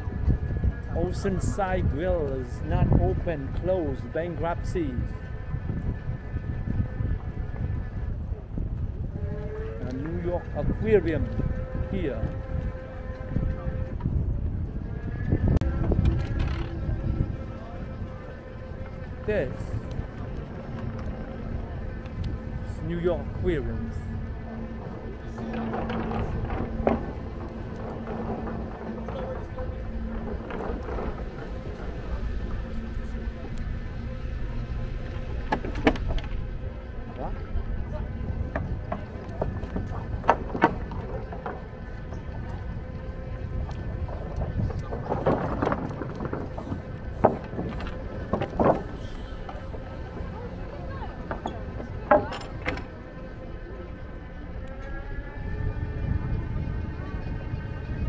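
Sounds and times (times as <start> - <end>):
wind rumbling on microphone: 0.0 - 58.0.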